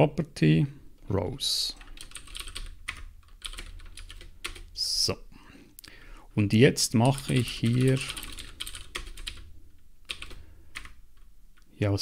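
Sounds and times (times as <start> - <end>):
typing on computer keyboard: 1.8 - 4.7, 7.0 - 9.5, 10.1 - 11.3.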